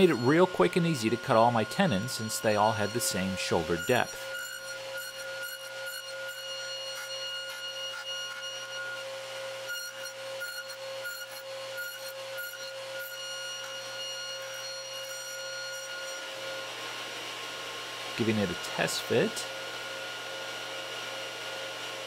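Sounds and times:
saw rasping cuts in wood: 0:00.0 - 0:22.0
table saw running: 0:00.0 - 0:22.0.

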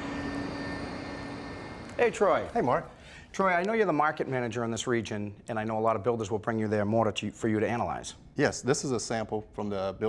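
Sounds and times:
industrial machinery drone: 0:00.0 - 0:02.6
faint high whine: 0:00.0 - 0:03.0.

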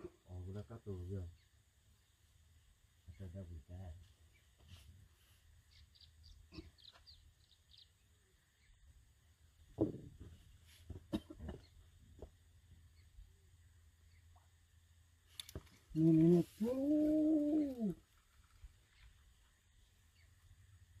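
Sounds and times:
drawn-out vocal calls: 0:15.8 - 0:19.2.

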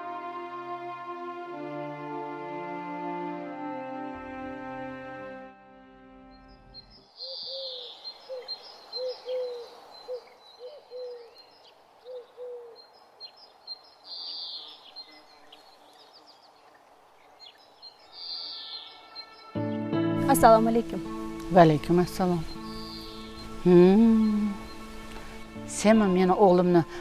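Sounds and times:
background music: 0:00.0 - 0:07.0, 0:18.2 - 0:27.0
birds chirping and twittering: 0:06.2 - 0:27.0.

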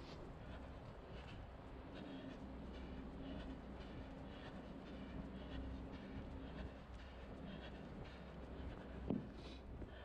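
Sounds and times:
runner breathing: 0:00.0 - 0:10.0.

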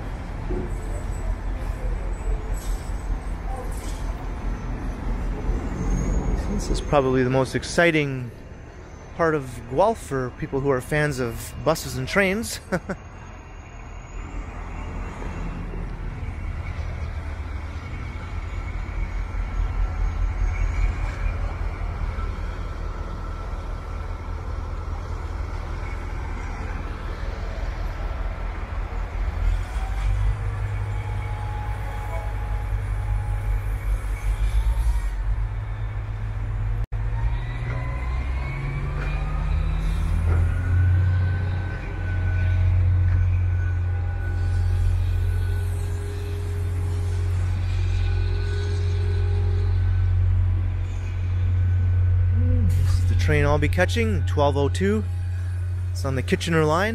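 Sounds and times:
heavy diesel engines rumbling: 0:00.0 - 0:56.9.

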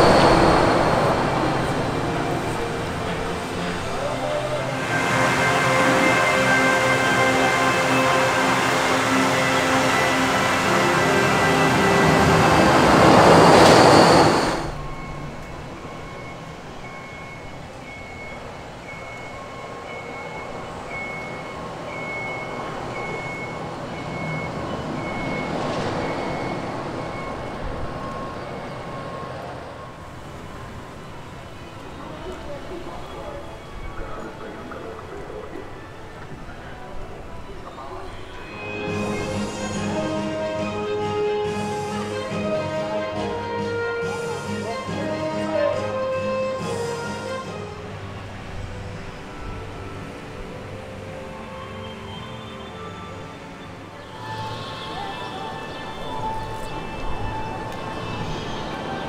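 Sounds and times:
loud rushing sound: 0:00.0 - 0:16.3
steady background hum: 0:00.0 - 0:45.2
outdoor area music: 0:01.3 - 0:13.0, 0:33.3 - 0:59.0.

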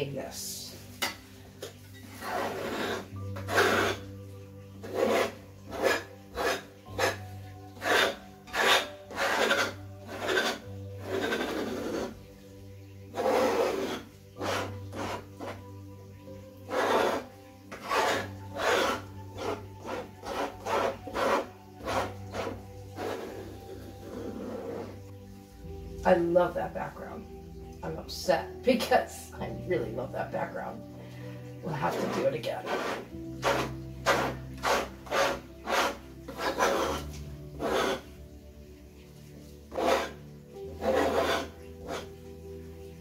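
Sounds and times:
palette knife scraping paint: 0:02.0 - 0:12.2, 0:13.1 - 0:15.6, 0:16.7 - 0:25.1, 0:31.6 - 0:38.2, 0:39.6 - 0:40.2, 0:40.8 - 0:42.3.

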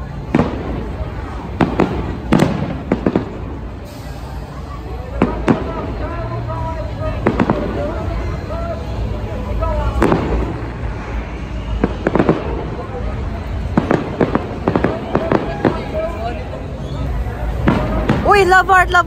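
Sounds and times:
fireworks bangs: 0:00.0 - 0:19.0.

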